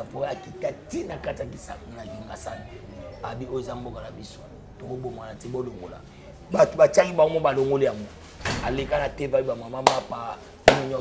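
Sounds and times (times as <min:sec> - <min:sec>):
man talking animatedly: 0:00.0 - 0:11.0
sharp smacks: 0:10.7 - 0:10.9.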